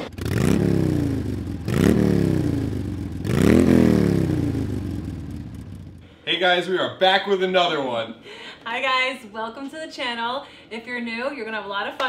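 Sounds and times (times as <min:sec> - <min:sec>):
motorcycle engine revving: 0:00.0 - 0:06.0.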